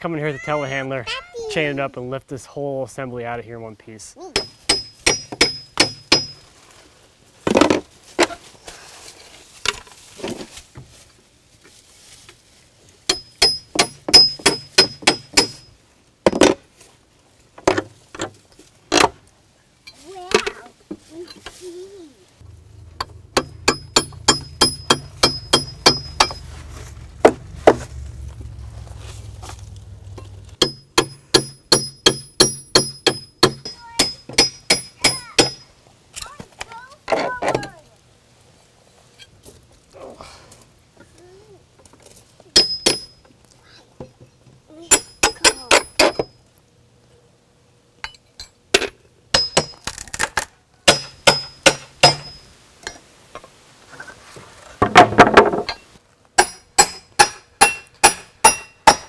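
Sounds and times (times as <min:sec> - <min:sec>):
rapid hammer blows on metal: 0:23.0 - 0:26.4, 0:56.4 - 0:59.0.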